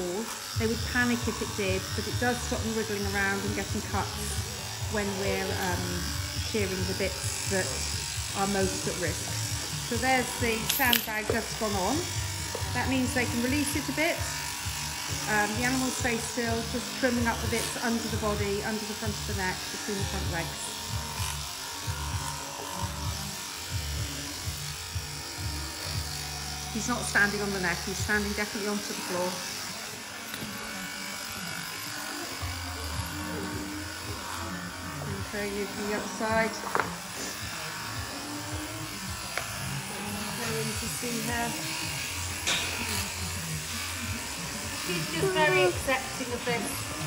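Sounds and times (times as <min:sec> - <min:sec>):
electric shears humming: 0:00.0 - 0:47.0.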